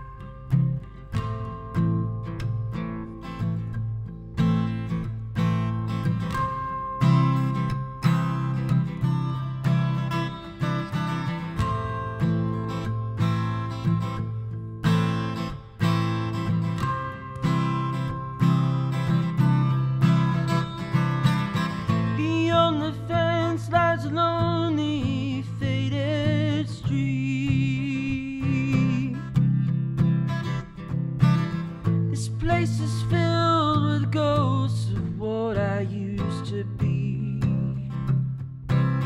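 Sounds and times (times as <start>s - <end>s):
acoustic guitar strummed chords: 0.0s - 39.0s.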